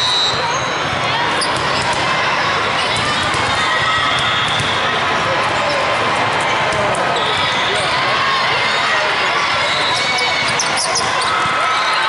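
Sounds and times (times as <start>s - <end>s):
voices of players and spectators: 0.0s - 12.0s
sneakers squeaking on court: 0.3s - 2.0s, 9.6s - 12.0s.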